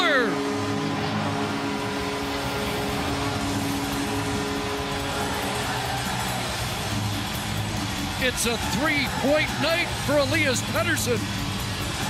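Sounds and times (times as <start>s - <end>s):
held horn tones: 0.0s - 7.7s
crowd noise: 0.0s - 12.0s
music: 0.0s - 12.0s.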